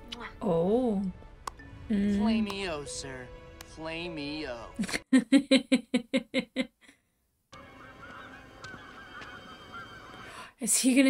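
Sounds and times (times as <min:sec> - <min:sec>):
cartoon birds cawing: 0:07.6 - 0:10.3.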